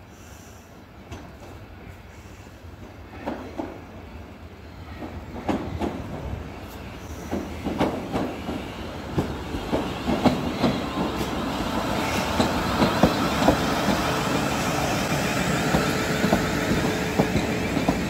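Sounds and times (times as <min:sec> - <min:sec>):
train passing: 0:00.0 - 0:18.0.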